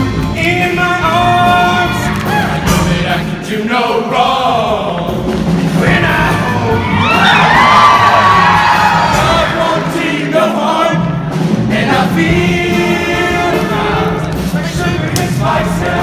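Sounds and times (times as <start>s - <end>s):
male choir singing to music: 0.0s - 16.0s
audience cheering: 6.3s - 9.6s.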